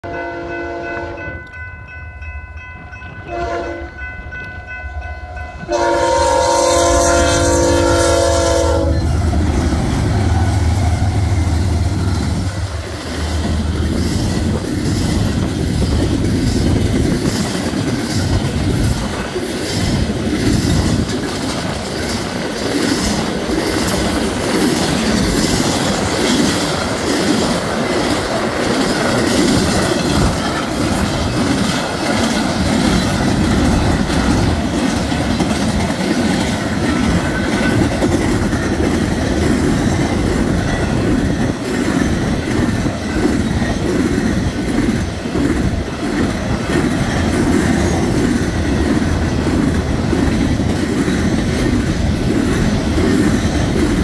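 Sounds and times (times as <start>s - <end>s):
locomotive air horn blasts: 0.0s - 1.4s, 3.3s - 4.0s, 5.6s - 9.2s
crossing bell ringing: 0.0s - 9.4s, 36.6s - 38.8s, 39.8s - 41.6s
train rumble: 0.0s - 54.0s
wheels clicking over rail joints: 8.7s - 54.0s.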